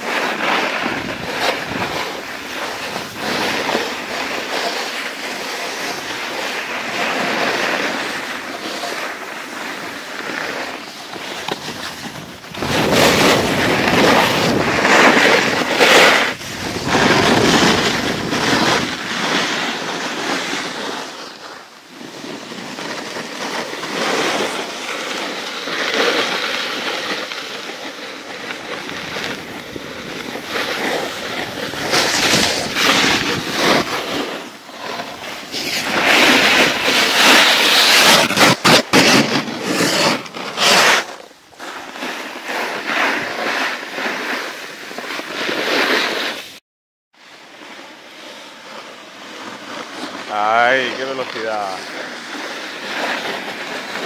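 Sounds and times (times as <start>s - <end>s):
wind on microphone: 0.0s - 4.6s, 11.0s - 20.8s, 28.4s - 34.3s
edges scraping over snow: 0.0s - 46.6s, 47.2s - 54.0s.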